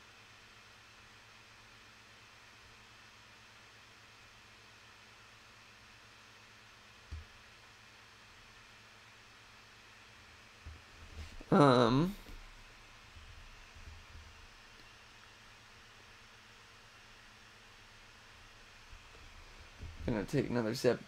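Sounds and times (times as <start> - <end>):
faint microphone hiss: 0.0 - 21.0.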